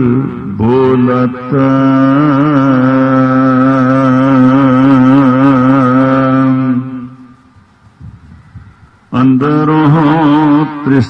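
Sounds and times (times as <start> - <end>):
man chanting a long held note: 0.0 - 7.3, 9.1 - 11.0.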